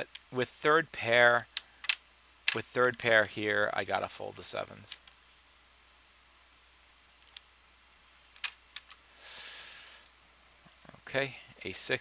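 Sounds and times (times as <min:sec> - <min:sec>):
faint low hum: 0:00.0 - 0:12.0
soft hiss: 0:00.0 - 0:12.0
computer mouse clicks: 0:06.3 - 0:06.6, 0:07.2 - 0:09.0.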